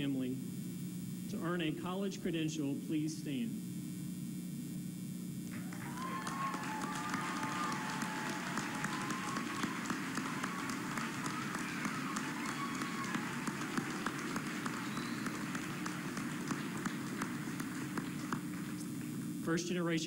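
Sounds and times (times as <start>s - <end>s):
audience applause: 5.5s - 19.2s.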